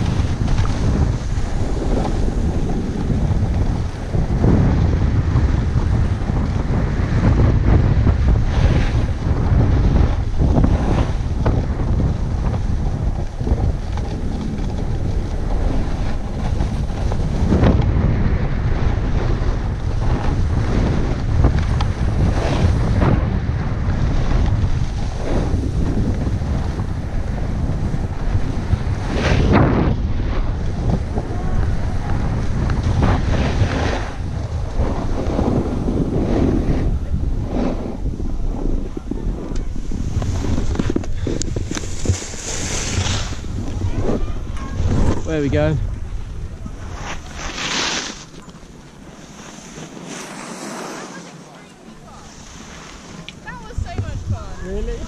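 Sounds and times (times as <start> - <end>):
ski edges scraping snow: 0.0 - 17.8, 18.8 - 23.2, 23.8 - 45.8, 46.5 - 55.0
wind buffeting microphone: 0.0 - 55.0.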